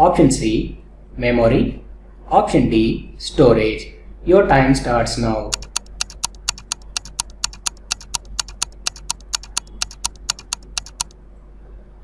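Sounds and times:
countdown timer ticking: 5.5 - 11.1.

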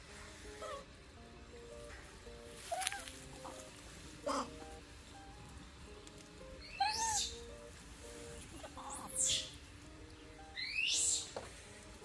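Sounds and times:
quiet background music: 0.0 - 12.0
high-pitched squealing calls: 2.6 - 4.7, 6.6 - 7.6, 8.4 - 9.6, 10.4 - 11.4.

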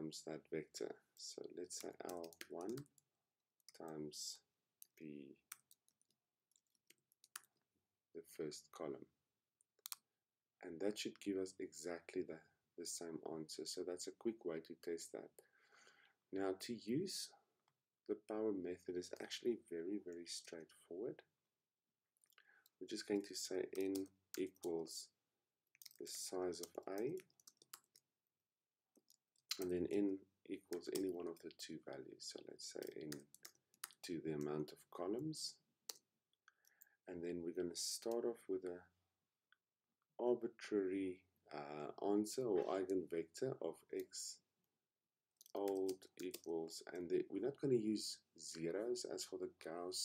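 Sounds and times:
computer keyboard typing: 1.8 - 2.9, 23.7 - 24.7, 25.8 - 28.0, 30.6 - 31.6, 32.8 - 34.5, 45.5 - 46.5.

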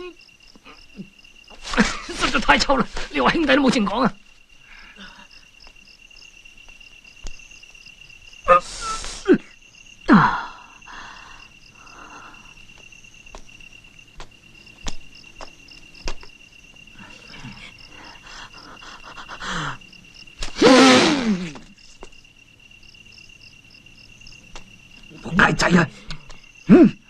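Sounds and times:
crickets chirping: 0.0 - 27.0.

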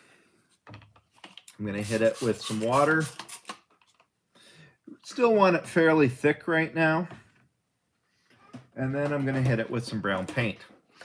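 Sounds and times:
soft hiss of squeeze bottle: 1.8 - 3.6.

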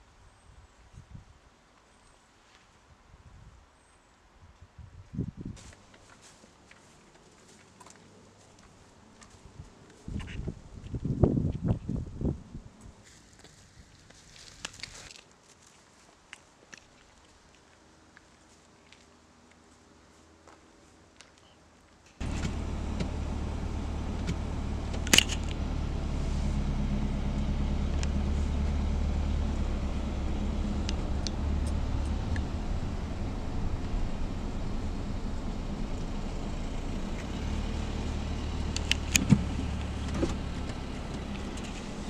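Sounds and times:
car engine and road rumble: 22.2 - 42.0
sharp clicks: 24.2 - 25.6, 38.7 - 41.9.

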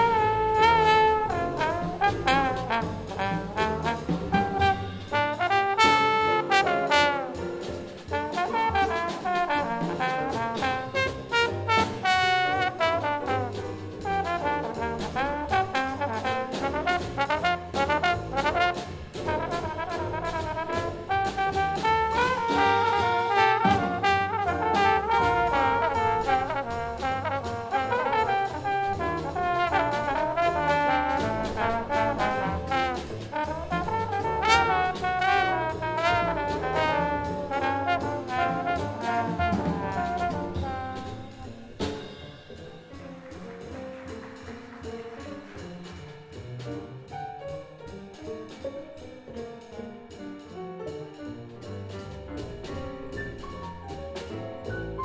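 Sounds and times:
trombones playing melody: 0.0 - 45.6
double bass: 0.0 - 55.0
drum kit with cymbals: 0.0 - 55.0.

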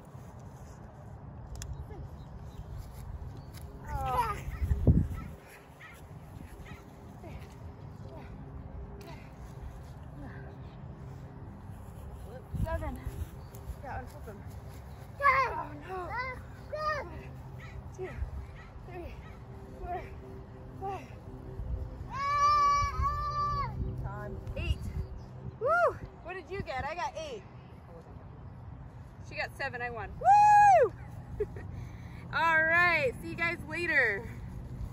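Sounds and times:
steady low rumble: 0.0 - 34.9.

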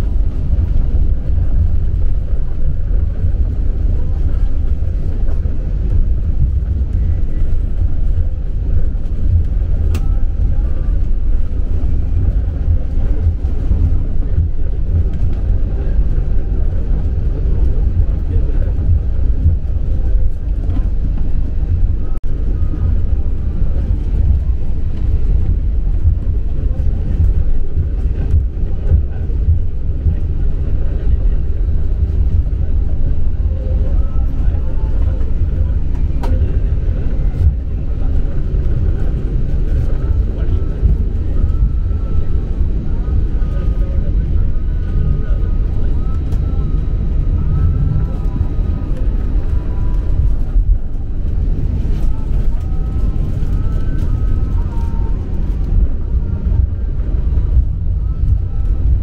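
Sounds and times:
airliner cabin rumble: 0.0 - 59.0.

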